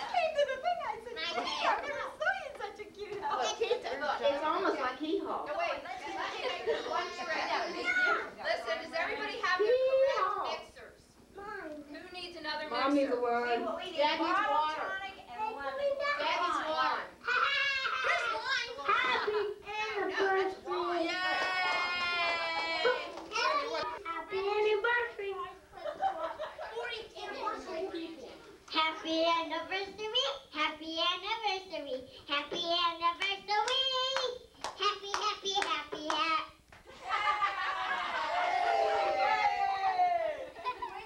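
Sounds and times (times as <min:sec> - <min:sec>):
child singing: 0:28.8 - 0:36.6.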